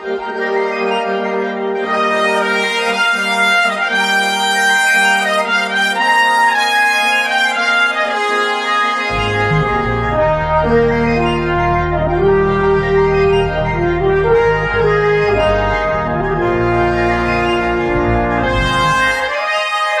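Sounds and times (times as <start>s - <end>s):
brass fanfare: 0.1s - 20.0s
deep bass part: 9.1s - 19.3s.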